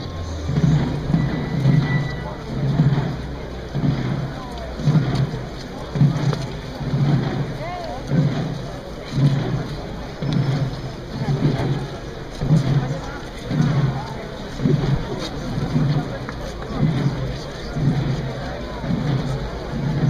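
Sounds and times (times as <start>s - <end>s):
crowd talking: 0.0s - 20.0s
drums beating a slow march: 0.0s - 20.0s.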